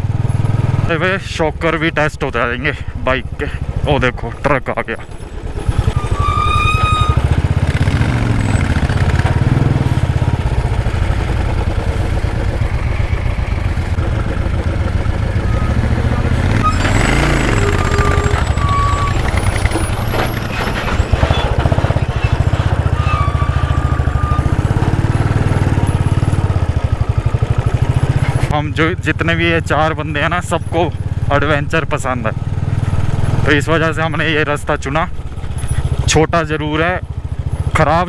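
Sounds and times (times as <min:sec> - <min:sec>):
motorcycle engine running: 0:00.0 - 0:38.0.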